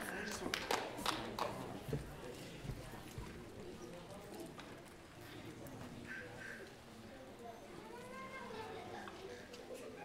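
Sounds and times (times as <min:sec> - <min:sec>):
scattered applause: 0:00.0 - 0:02.0
low audience murmur: 0:00.0 - 0:10.0.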